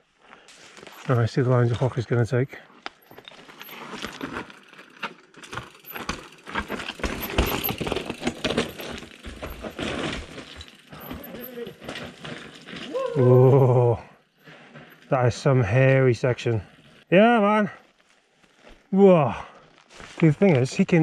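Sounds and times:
bike tyres crunching on gravel: 0.2s - 21.0s
bike rattling: 0.5s - 2.1s, 2.9s - 17.1s.

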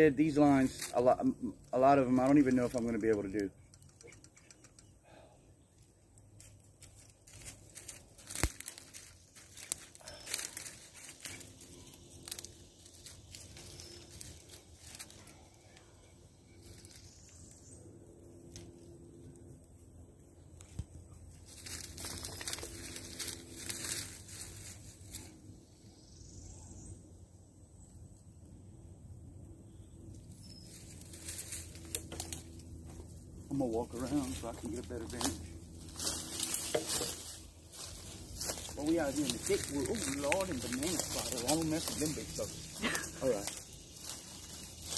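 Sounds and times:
crackles and clicks: 6.1s - 17.7s.

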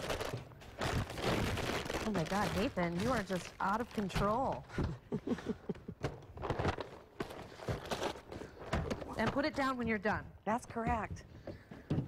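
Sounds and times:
paper bags crackling: 0.0s - 4.6s, 6.4s - 9.4s
woman laughing: 4.7s - 6.0s.

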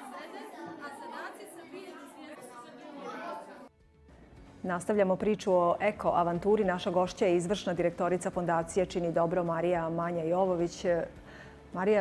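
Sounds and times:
children and adults chattering: 0.0s - 3.7s.

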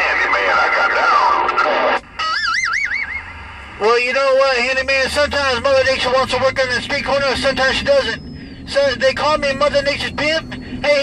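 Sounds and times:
warbling electronic radio tone: 0.0s - 11.0s.

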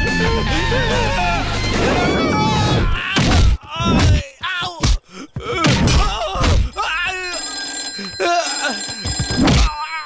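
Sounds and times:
man's voice: 0.0s - 5.0s, 9.6s - 10.0s
mobile phone ringing: 6.8s - 10.0s.

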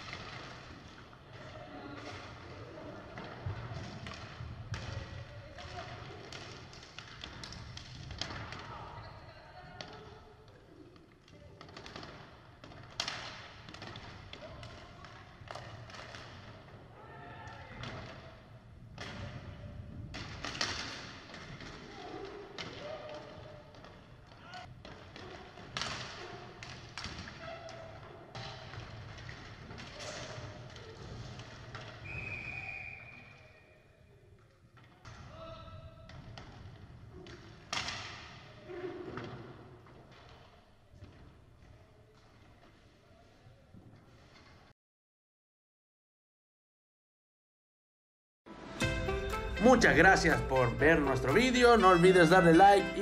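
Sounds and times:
hockey sticks and puck clacking: 0.0s - 9.1s, 9.7s - 33.4s, 34.4s - 42.9s, 49.4s - 53.0s
referee's whistle blast: 32.0s - 33.4s
players calling out: 49.3s - 53.0s.

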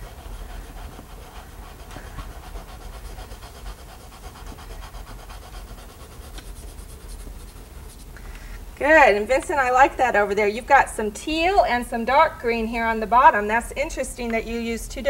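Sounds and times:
chalk pastel scratching on paper: 0.0s - 8.2s
low steady hum: 0.0s - 15.0s.

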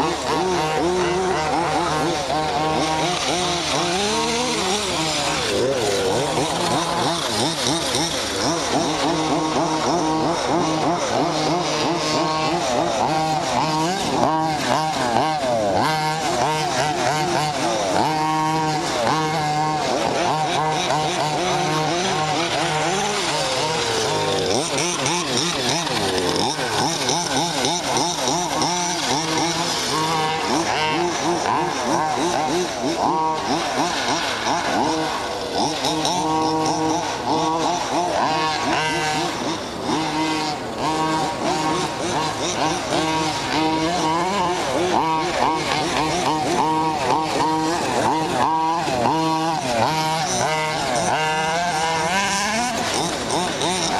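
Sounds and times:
rc car engines revving: 0.0s - 53.9s.

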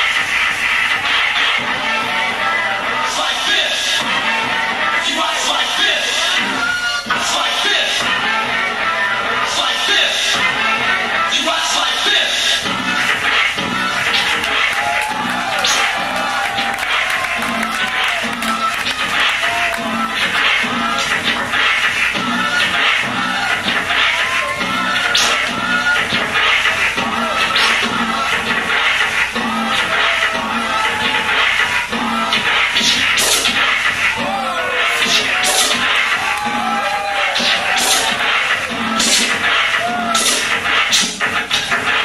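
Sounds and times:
hip-hop beat: 0.0s - 42.0s
turntable scratching: 0.0s - 42.0s.

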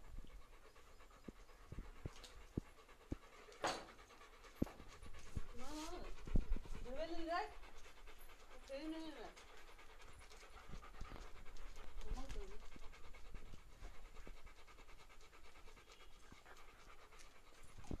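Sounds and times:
dog panting: 0.0s - 18.0s.

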